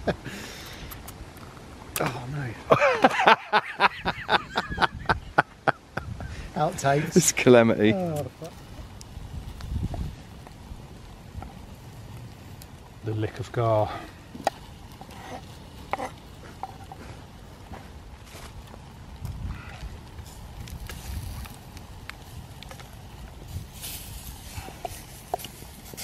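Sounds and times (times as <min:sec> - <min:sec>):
campfire crackling and popping: 0:00.0 - 0:26.0
wooden spoon stirring in steel pots: 0:14.4 - 0:17.2
knife on wooden chopping board: 0:15.0 - 0:16.8.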